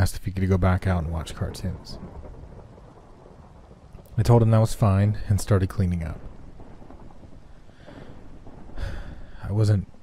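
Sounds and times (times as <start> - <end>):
low thunder rumble: 0.0 - 10.0
rain hiss: 0.0 - 10.0.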